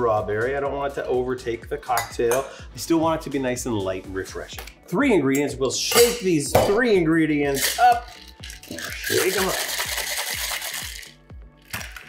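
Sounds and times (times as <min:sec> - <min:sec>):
ice rattling in cocktail shaker: 0:07.5 - 0:12.0
shaker knocked open: 0:07.6 - 0:12.0.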